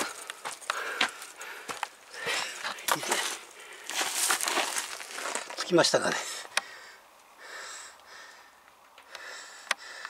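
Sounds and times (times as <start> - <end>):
breathing through the nose: 0.0 - 4.1, 6.3 - 10.0
footsteps on gritty stone floor: 0.0 - 6.6.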